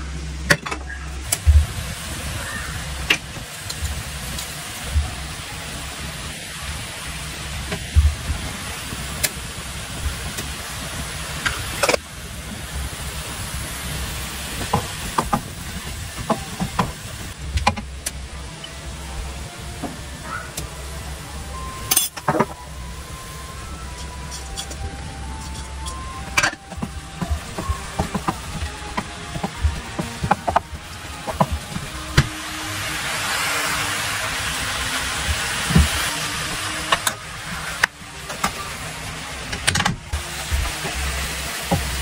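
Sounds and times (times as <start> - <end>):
food sizzling in frying pan: 1.2 - 39.5, 40.1 - 42.0.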